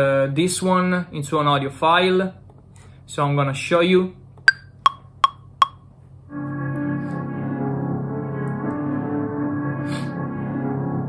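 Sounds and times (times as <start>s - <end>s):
metronome clicks: 4.5s - 5.8s.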